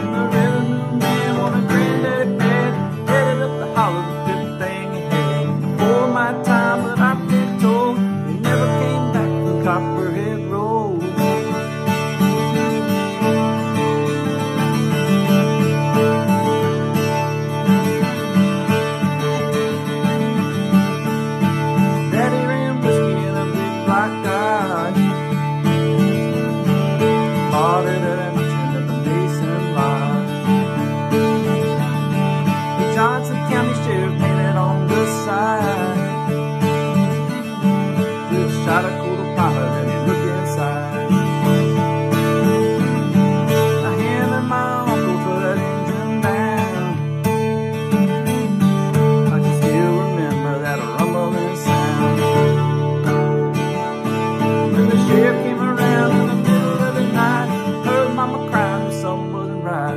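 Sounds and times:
acoustic guitar strummed and picked: 0:00.0 - 0:59.9.

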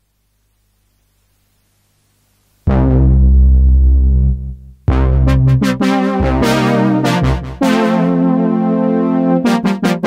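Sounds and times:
deep synthesizer bass note: 0:02.7 - 0:07.7
bright synthesizer chord: 0:02.7 - 0:10.0.

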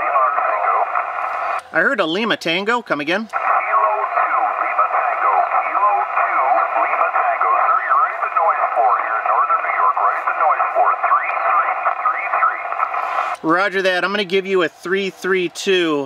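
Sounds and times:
static hiss: 0:00.0 - 0:02.3, 0:03.3 - 0:13.7
radio voices: 0:00.0 - 0:16.0.

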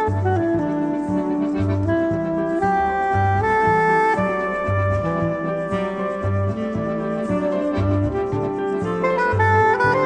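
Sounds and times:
saxophone holding long notes: 0:00.0 - 0:10.0.

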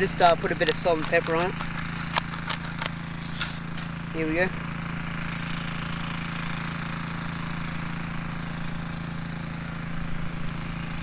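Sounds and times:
spice grinder clicking: 0:00.0 - 0:03.6.

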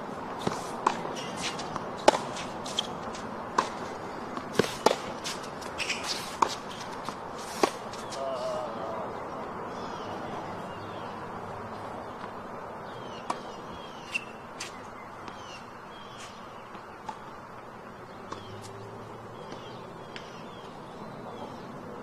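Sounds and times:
birds chirping: 0:00.4 - 0:22.0.

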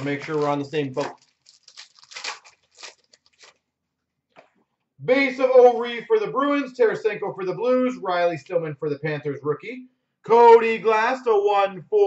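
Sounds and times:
card pack wrapper tearing: 0:00.0 - 0:03.6.

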